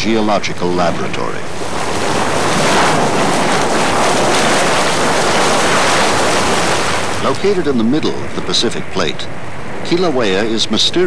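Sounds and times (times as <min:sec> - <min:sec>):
lava fountain rushing: 0:00.0 - 0:08.8.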